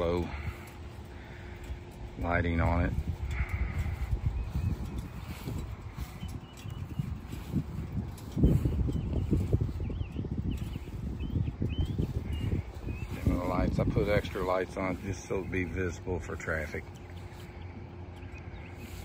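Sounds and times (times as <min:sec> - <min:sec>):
footsteps on grass: 0:00.0 - 0:19.0.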